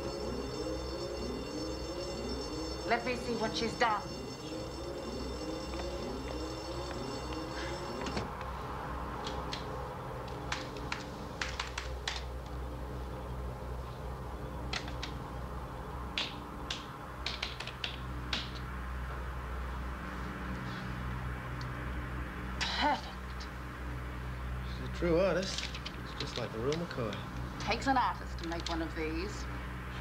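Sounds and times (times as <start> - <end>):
warbling electronic tone: 0.0 - 8.3
low hum: 0.0 - 11.4
computer keyboard typing: 10.3 - 12.3, 14.7 - 15.2.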